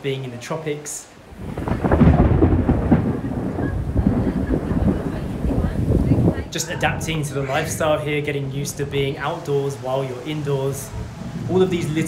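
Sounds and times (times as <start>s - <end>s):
heavy rain pouring: 0.0s - 12.0s.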